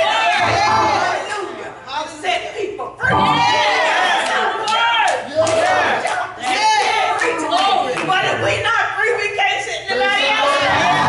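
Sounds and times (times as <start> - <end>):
congregation calling out: 0.0 - 11.0.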